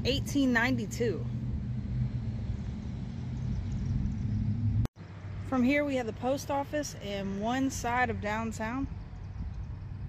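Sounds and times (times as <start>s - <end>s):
steady low hum: 0.0s - 4.9s.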